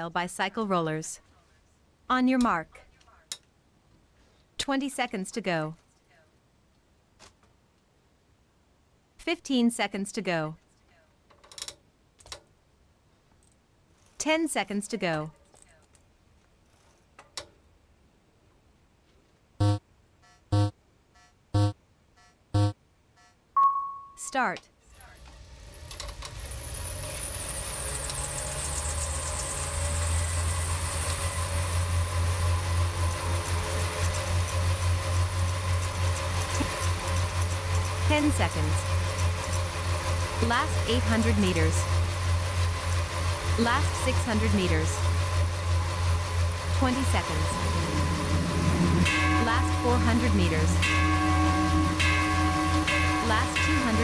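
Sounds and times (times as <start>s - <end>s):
electronic countdown beeps: 19.6s - 21.8s, 22.6s - 24.4s
bike tyre humming on roller trainer: 25.3s - 54.0s
synthesized voice calling out: 38.1s - 38.8s, 40.4s - 41.9s, 43.6s - 45.0s, 46.8s - 50.9s, 53.2s - 54.0s.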